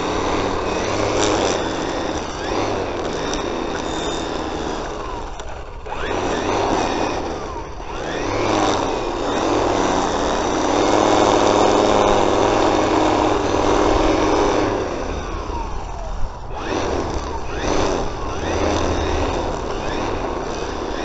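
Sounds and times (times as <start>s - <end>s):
string trimmer cutting grass: 0.0s - 21.0s.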